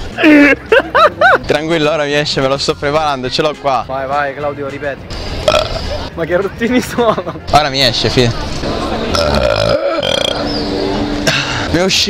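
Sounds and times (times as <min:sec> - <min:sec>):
man burping: 0:05.4 - 0:05.9, 0:09.1 - 0:10.4.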